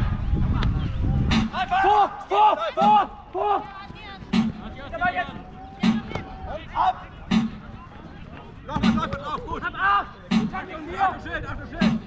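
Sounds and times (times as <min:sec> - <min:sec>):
drum beats: 0:01.2 - 0:01.7, 0:02.8 - 0:10.7, 0:11.8 - 0:12.0
people shouting: 0:01.3 - 0:07.4, 0:08.7 - 0:11.1.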